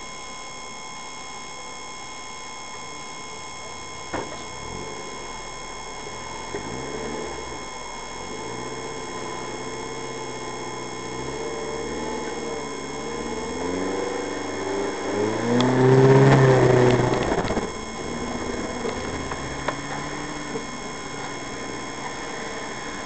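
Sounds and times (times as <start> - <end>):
vehicle engine under load: 3.6 - 23.0.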